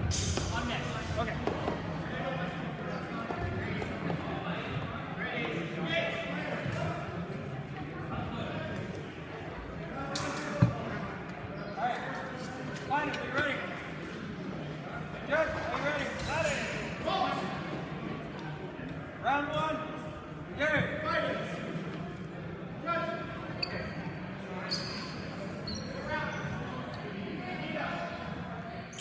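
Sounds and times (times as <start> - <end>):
crowd chatter echoing: 0.0 - 29.0
shoes squeaking on hardwood floor: 24.7 - 26.5.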